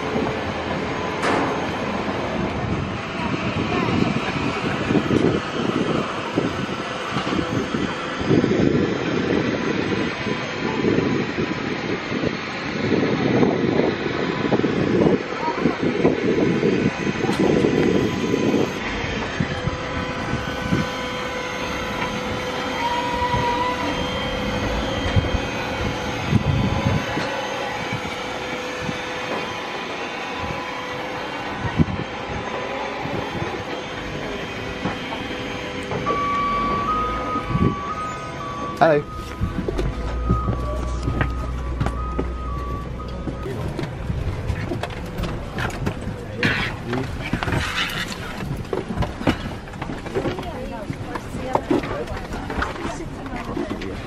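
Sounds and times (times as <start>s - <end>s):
mechanical hum with whine: 0.0s - 54.0s
wind buffeting microphone: 0.0s - 54.0s.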